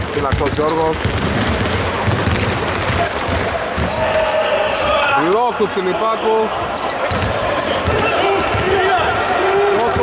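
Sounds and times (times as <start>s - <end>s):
basketball bouncing on hardwood: 0.3s - 4.0s.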